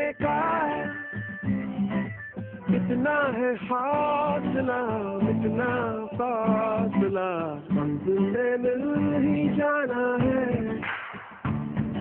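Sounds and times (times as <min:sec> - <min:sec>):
man singing with guitar: 0:00.0 - 0:01.8, 0:02.6 - 0:10.9.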